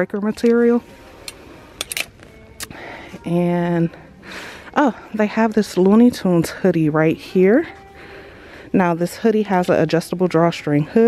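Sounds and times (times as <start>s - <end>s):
hangers clicking on metal rack: 1.3s - 2.7s.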